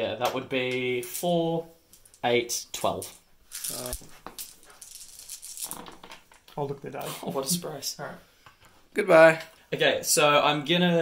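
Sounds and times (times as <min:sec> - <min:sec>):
dice clattering on cloth: 0:03.0 - 0:06.3
dice rattling in hands: 0:03.5 - 0:05.8.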